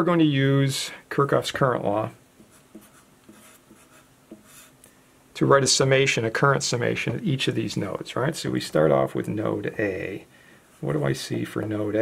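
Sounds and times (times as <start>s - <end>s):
marker writing on paper: 2.4s - 4.8s.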